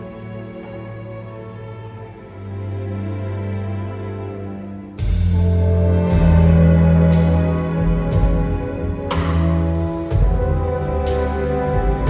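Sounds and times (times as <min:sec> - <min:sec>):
orchestra and jazz band playing: 0:00.0 - 0:12.0.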